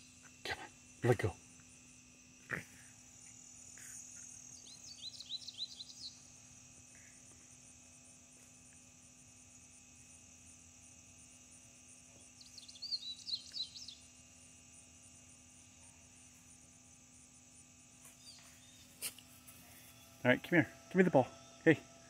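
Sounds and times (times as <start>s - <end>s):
quiet steady hum: 0.0s - 22.0s.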